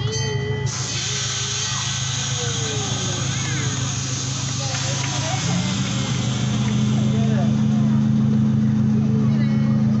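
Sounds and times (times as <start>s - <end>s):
miniature train engine droning: 0.0s - 10.0s.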